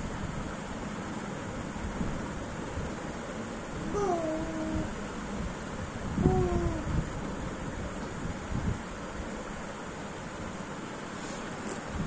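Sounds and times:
steady background hiss: 0.0s - 12.0s
toddler vocal sound: 3.8s - 5.0s, 6.2s - 7.0s.

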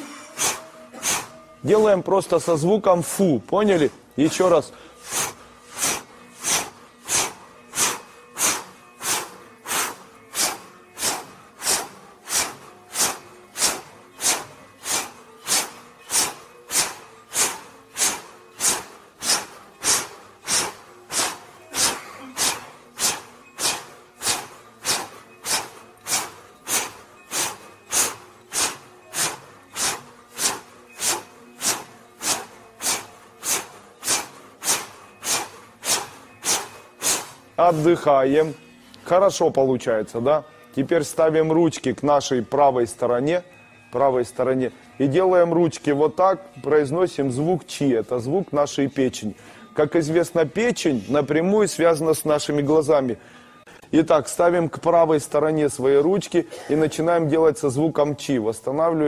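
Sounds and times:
forceful breath exhalations: 0.0s - 1.4s, 4.7s - 37.4s.

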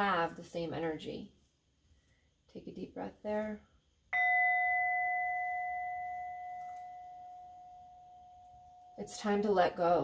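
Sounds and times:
singing bowl ringing: 4.2s - 9.7s.

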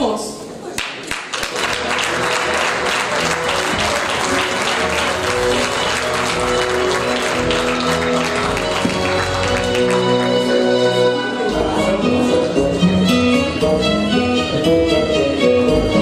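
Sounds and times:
audience applauding: 0.8s - 10.7s
music with held notes: 1.6s - 16.0s.

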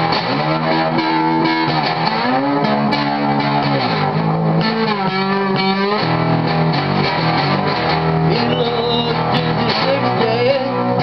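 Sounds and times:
cigar box guitar blues melody: 0.0s - 11.0s.

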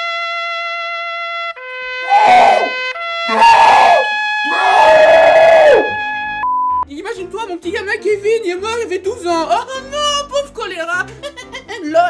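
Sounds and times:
trumpet fanfare: 0.0s - 6.4s
man screaming loudly: 2.1s - 5.9s.

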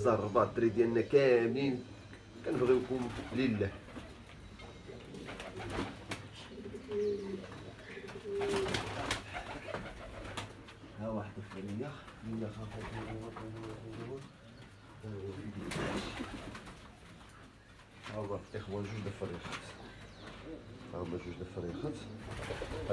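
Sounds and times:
pigeons cooing: 2.5s - 11.0s, 11.9s - 18.0s, 18.7s - 22.9s.

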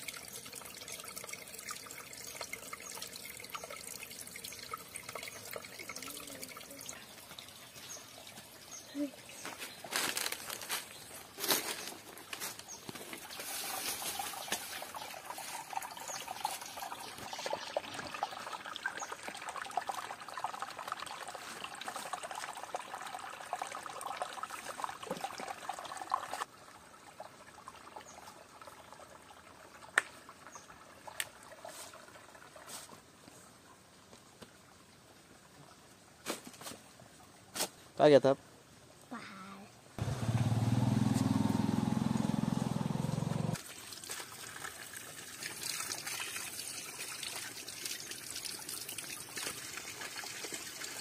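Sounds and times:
water trickling over stones: 0.0s - 39.3s, 43.5s - 51.0s.

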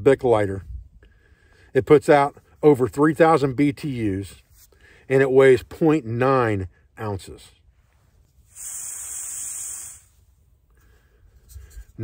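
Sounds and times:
hiss of escaping gas: 8.4s - 10.3s.

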